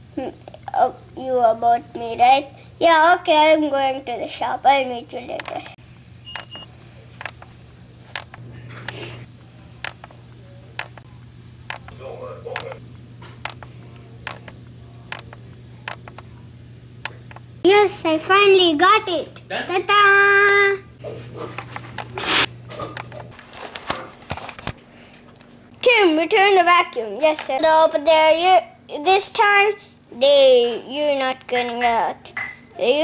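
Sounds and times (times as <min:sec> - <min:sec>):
high electronic beep: 0:06.3 - 0:06.7
light clicks and taps: 0:11.7 - 0:12.8.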